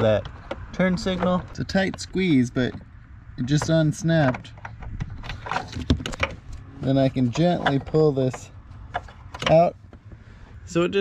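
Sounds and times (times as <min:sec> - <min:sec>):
plastic clicks and rattles: 0:07.3 - 0:09.7.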